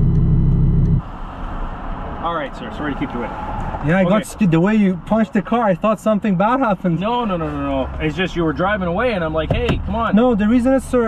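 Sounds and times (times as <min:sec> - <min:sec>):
car engine idling: 0:00.0 - 0:01.1.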